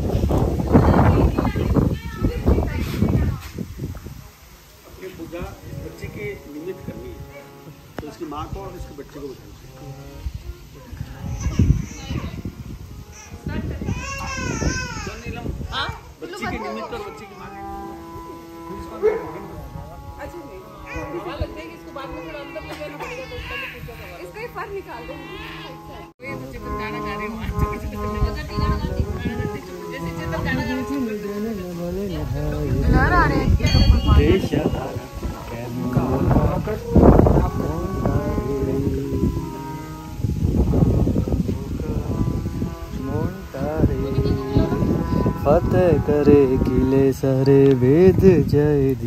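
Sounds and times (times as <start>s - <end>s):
people talking: 0.0s - 10.0s, 10.6s - 12.6s, 13.3s - 39.6s, 40.4s - 49.0s
harmonium chord: 4.2s - 49.0s
musical accompaniment: 4.2s - 49.0s
devotional singing: 26.2s - 49.0s.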